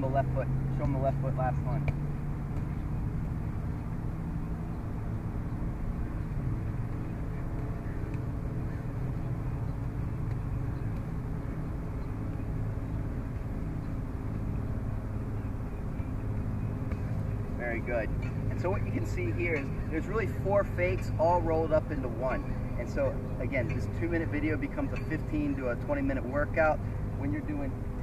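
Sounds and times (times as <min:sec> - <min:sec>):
low outdoor background rumble: 0:00.0 - 0:28.0.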